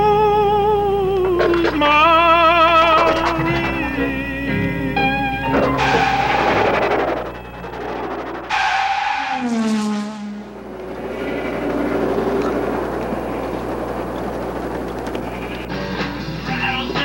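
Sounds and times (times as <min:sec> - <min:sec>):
car engine revving: 0:01.2 - 0:17.0
tyre noise: 0:01.3 - 0:09.4.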